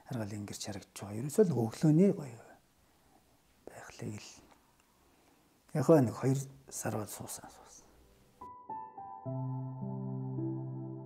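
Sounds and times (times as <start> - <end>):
man's breathy whispered syllable: 3.6 - 4.6, 7.2 - 8.0.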